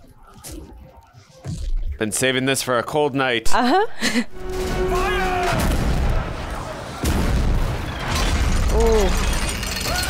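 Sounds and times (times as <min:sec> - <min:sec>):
cannon fire booms: 0:04.5 - 0:08.7.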